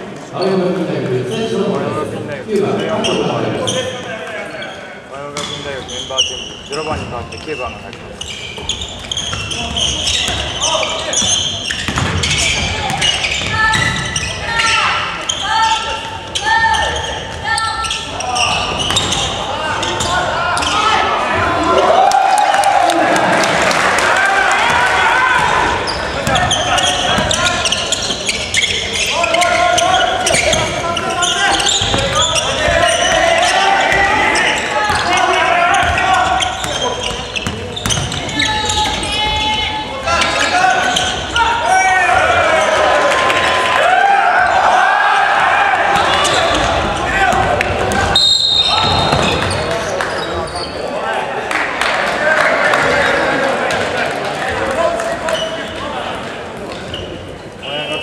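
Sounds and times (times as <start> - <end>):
players shouting in hall: 12.4 - 27.9, 29.0 - 37.0, 38.3 - 49.8.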